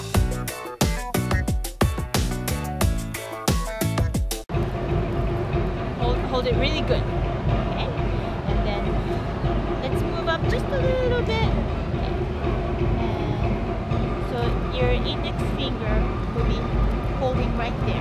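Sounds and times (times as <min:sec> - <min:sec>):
steady low rumble: 0:04.5 - 0:18.0.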